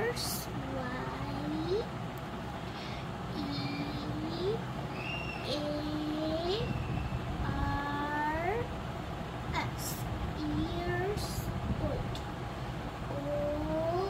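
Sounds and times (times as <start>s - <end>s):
steady low rumble: 0.0s - 14.0s.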